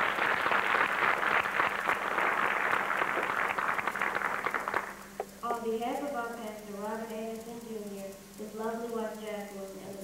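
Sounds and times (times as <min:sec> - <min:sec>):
crowd applauding: 0:00.0 - 0:05.0.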